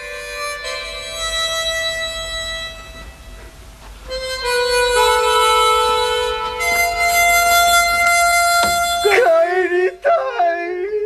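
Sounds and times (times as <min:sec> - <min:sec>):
harmonica holding long note: 0:00.0 - 0:10.0.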